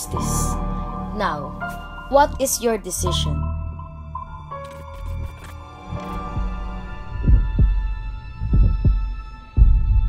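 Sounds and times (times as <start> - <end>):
heartbeat thumps: 6.0 - 10.0.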